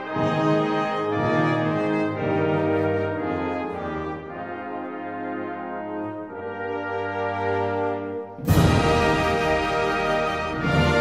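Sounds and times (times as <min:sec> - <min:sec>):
brass-led orchestral music: 0:00.0 - 0:11.0.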